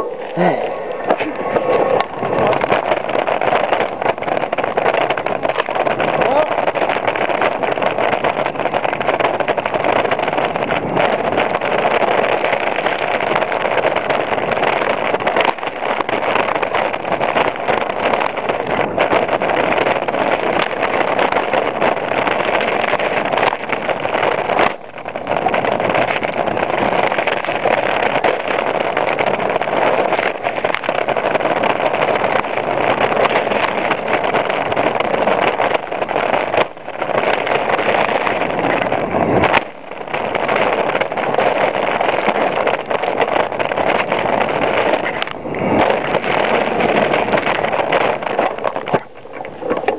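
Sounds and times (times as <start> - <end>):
mountain bike rattling on rough trail: 0.0 - 49.9
wind rushing over microphone: 0.0 - 49.9.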